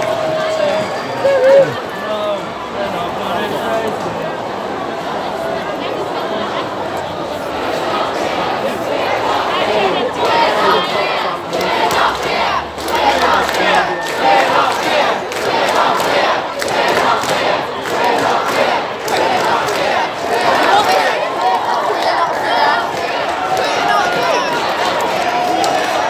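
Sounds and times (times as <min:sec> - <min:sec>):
crowd of protesters shouting: 0:00.0 - 0:26.0.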